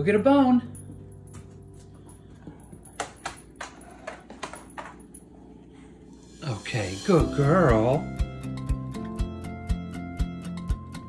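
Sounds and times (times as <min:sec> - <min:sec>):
dog claws clicking on hard floor: 0:00.9 - 0:05.3.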